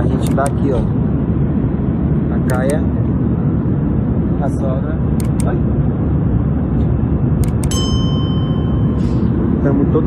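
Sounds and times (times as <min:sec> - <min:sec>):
airliner cabin noise: 0:00.0 - 0:10.0
cabin chime: 0:07.7 - 0:09.1.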